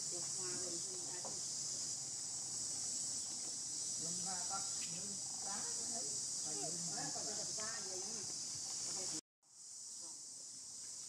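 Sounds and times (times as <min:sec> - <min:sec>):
insect drone: 0:00.0 - 0:11.0.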